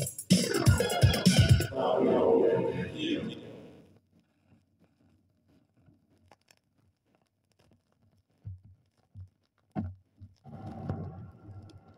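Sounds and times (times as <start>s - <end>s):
record stylus crackle and clicks: 3.9s - 11.9s.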